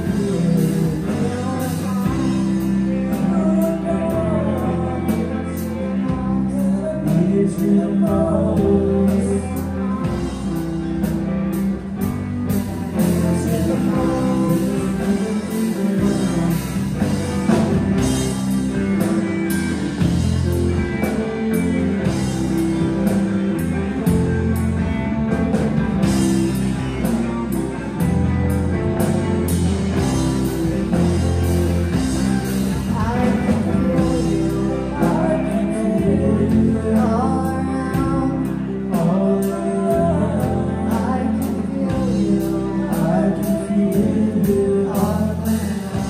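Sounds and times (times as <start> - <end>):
bass guitar: 0.0 - 46.0
electric guitars: 0.0 - 46.0
person singing: 0.0 - 46.0
drum kit beat: 9.8 - 37.2.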